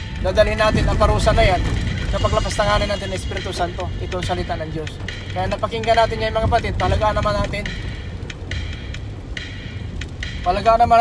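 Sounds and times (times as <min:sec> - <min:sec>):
car road and engine rumble: 0:00.0 - 0:11.0
faint background music: 0:00.0 - 0:11.0.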